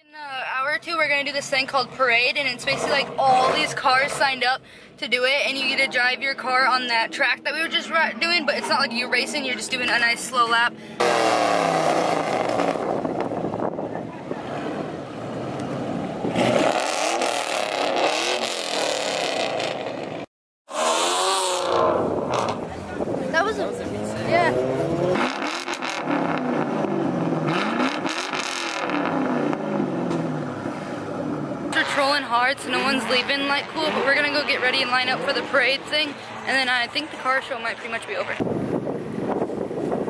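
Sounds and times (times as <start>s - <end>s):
car engines revving: 0.7s - 40.0s.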